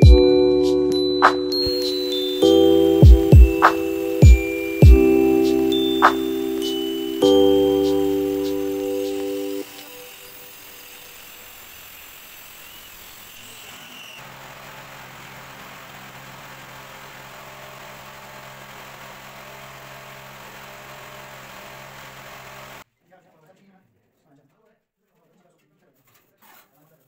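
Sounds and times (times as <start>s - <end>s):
mallet percussion chime: 0.0s - 9.7s
hiss with thin high tone: 1.5s - 14.2s.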